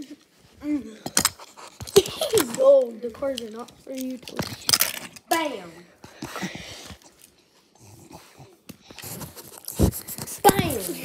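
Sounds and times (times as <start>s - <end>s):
dog breathy noises: 6.1s - 11.0s.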